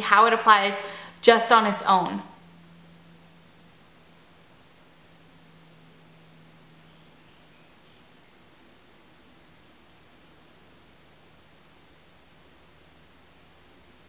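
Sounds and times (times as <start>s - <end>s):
low hum: 0.0s - 14.0s.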